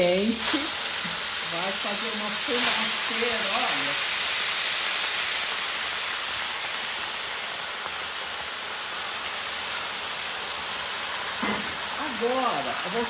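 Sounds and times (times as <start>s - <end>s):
water hissing in hot pan: 0.0s - 13.0s.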